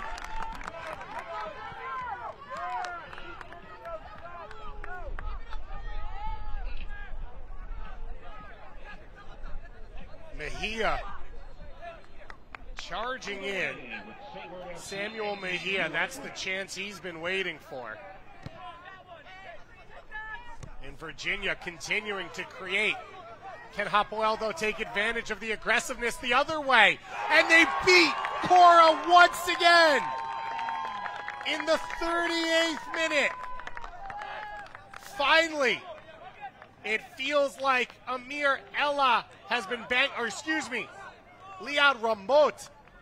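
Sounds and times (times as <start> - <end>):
distant players shouting: 21.8 - 43.0.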